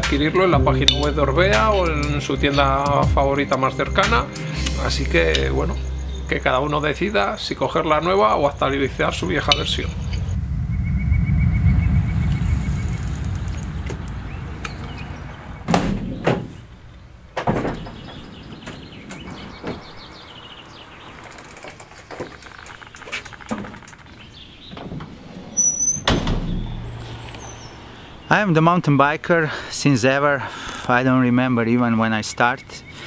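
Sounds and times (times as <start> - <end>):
low rumble: 0.0 - 25.6
sharp knocks: 15.7 - 16.7, 17.4 - 19.9.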